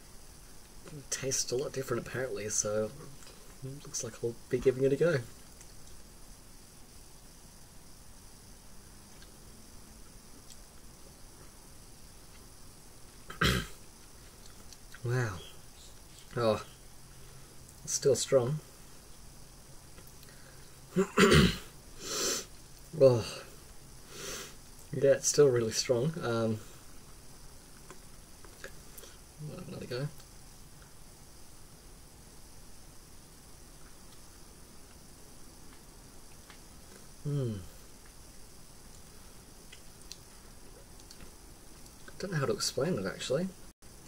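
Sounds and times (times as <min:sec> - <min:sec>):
man coughing harshly: 0:13.3 - 0:13.8, 0:21.0 - 0:21.7
faint small clicks: 0:41.0 - 0:42.2.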